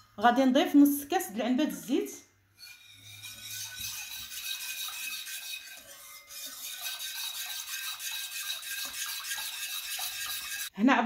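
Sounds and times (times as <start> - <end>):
wire whisk beating liquid in bowl: 2.6 - 10.7.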